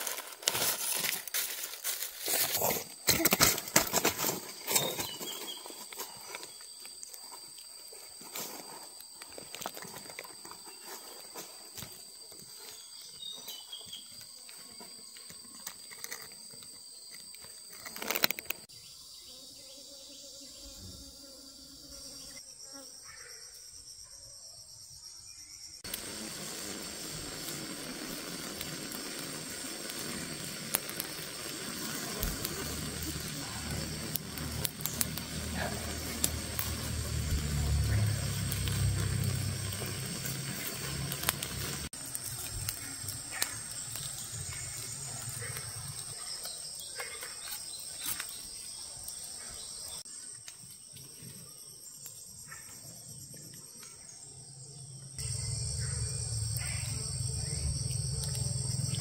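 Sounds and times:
insects droning: 0.0s - 59.0s.

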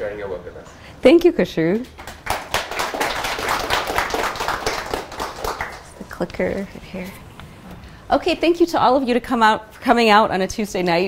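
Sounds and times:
audience applauding: 2.0s - 6.0s.

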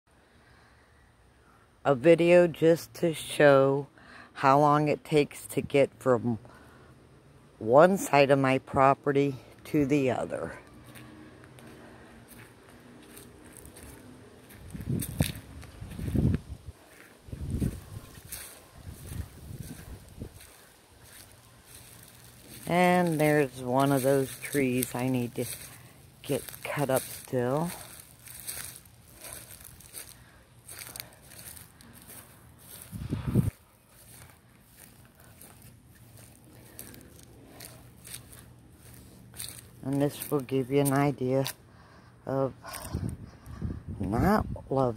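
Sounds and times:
footsteps as dull thuds: 10.8s - 40.4s.

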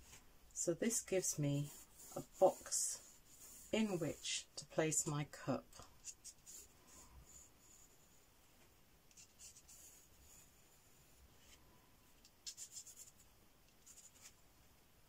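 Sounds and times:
pencil scratching on paper: 0.8s - 4.5s, 6.0s - 8.3s, 9.1s - 11.6s, 12.4s - 13.2s.

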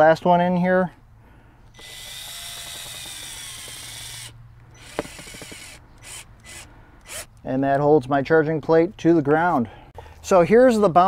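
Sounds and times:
cordless drill driving a screw: 1.7s - 7.3s
drill clicking: 1.7s - 7.3s.

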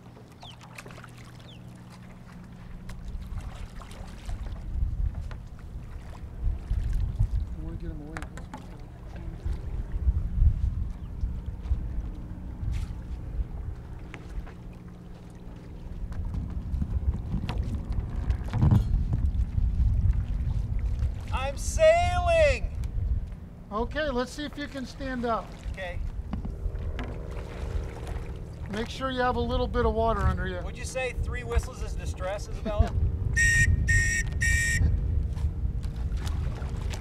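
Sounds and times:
wind buffeting microphone: 2.6s - 24.2s, 24.9s - 37.0s.

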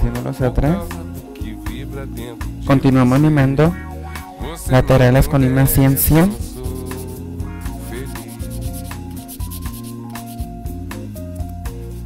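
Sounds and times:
background music: 0.0s - 12.0s
nail file scraping: 7.8s - 10.4s.

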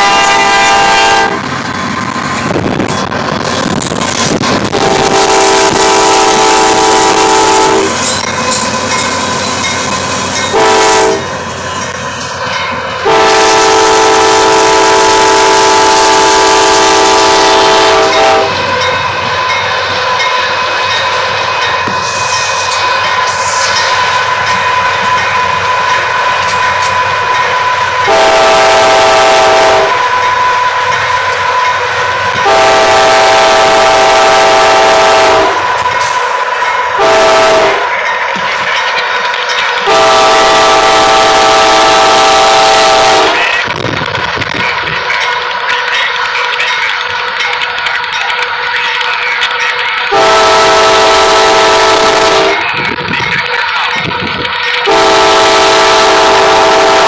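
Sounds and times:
locomotive air horn blasts: 0.0s - 1.4s, 4.6s - 8.1s, 10.5s - 11.3s, 13.0s - 18.8s, 26.9s - 30.8s, 32.3s - 35.7s, 37.0s - 37.9s, 39.8s - 43.7s, 50.1s - 52.6s, 54.8s - 57.0s.

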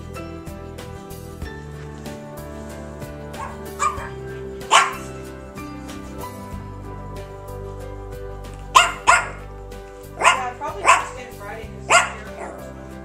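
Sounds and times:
background music: 0.0s - 13.0s
small dog barking: 3.4s - 5.1s, 8.7s - 9.4s, 10.2s - 11.2s, 11.8s - 12.7s.

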